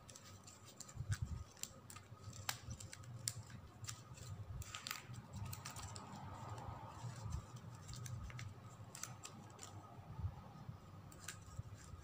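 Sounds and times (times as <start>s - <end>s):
plastic ribbon crinkling: 0.0s - 9.9s.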